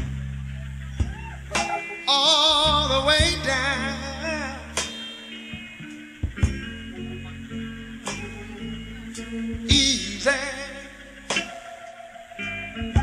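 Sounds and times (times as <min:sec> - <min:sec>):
slow soul band instrumental: 0:00.0 - 0:13.0
held vocal note with vibrato: 0:01.6 - 0:13.0
drum and cymbal hits: 0:04.8 - 0:07.0, 0:09.5 - 0:10.3, 0:11.3 - 0:11.6.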